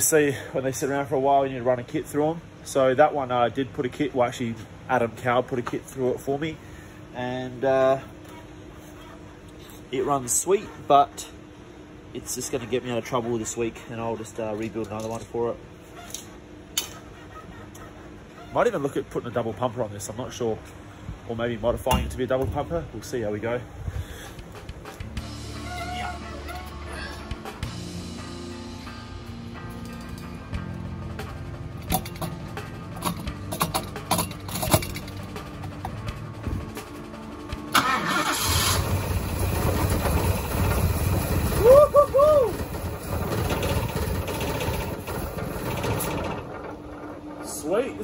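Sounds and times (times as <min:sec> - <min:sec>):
car engine running: 0:38.4 - 0:41.6.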